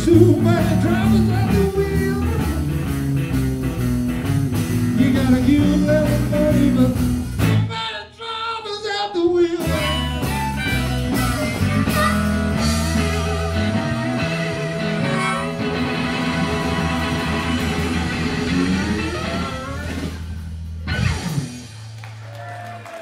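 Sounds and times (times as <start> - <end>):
lead guitar line: 0.0 - 7.7, 9.6 - 21.7
live blues band playing: 0.0 - 7.8, 9.3 - 22.1
harmonica: 9.6 - 20.0.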